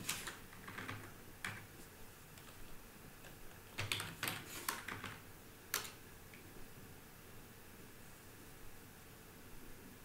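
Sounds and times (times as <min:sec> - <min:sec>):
computer keyboard typing: 0:00.0 - 0:01.7, 0:03.2 - 0:06.0.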